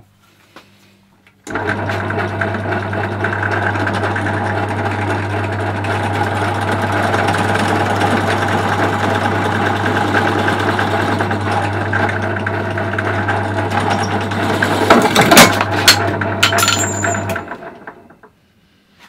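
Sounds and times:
drill press motor humming: 0:01.4 - 0:18.3.

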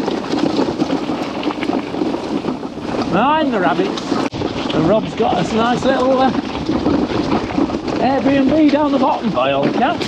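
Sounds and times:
bicycle tyres on gravel: 0:00.0 - 0:10.0
wind buffeting microphone: 0:00.0 - 0:10.0.

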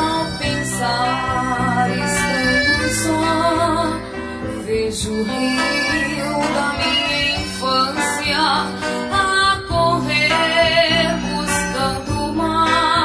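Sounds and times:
acoustic guitar: 0:00.0 - 0:13.0
girl singing with vibrato: 0:00.0 - 0:13.0.

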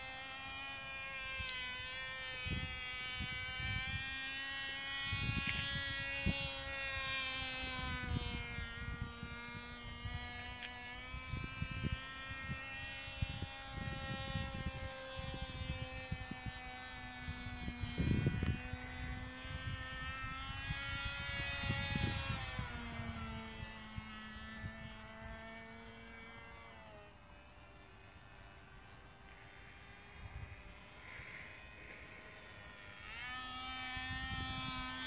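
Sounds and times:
model airplane engine buzzing: 0:00.0 - 0:35.0
wind buffeting microphone: 0:01.0 - 0:27.0, 0:29.8 - 0:35.0.

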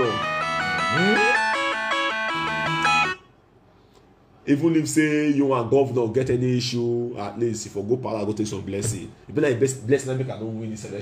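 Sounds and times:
melody of held notes: 0:00.0 - 0:03.3.

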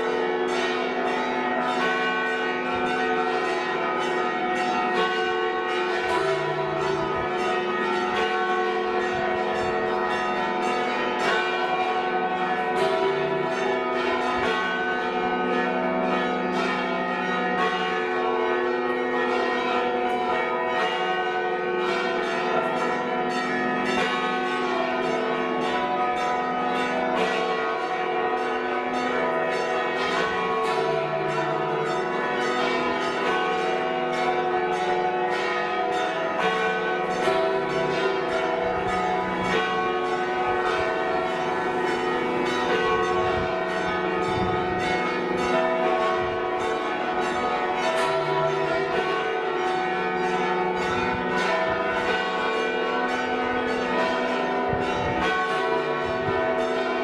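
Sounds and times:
church bells pealing: 0:00.0 - 0:57.0.

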